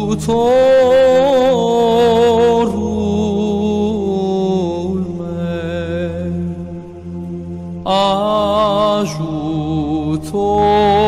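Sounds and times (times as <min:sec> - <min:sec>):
slow worship song: 0:00.0 - 0:11.0.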